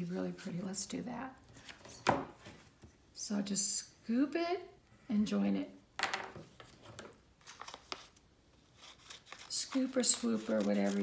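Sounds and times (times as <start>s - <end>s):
paper rustling: 6.6s - 11.0s
scissors snipping paper: 8.8s - 11.0s.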